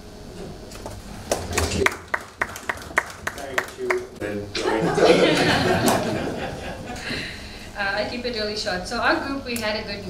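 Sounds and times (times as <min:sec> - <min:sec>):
light applause: 0:01.3 - 0:04.2.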